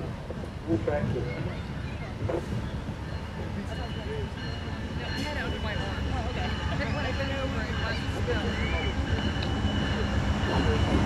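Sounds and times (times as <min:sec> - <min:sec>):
indistinct voices talking: 0:00.7 - 0:11.0.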